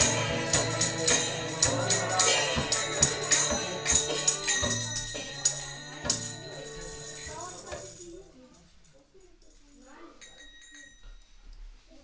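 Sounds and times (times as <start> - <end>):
harmonium chord: 0.0 - 7.7
tambourine jingling strike: 0.0 - 8.3
faint small noises: 6.0 - 12.0.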